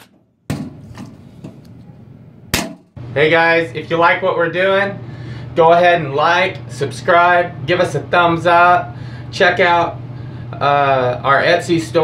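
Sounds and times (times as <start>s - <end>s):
workshop handling noise: 0.0s - 2.9s
sharp impact: 2.5s - 3.0s.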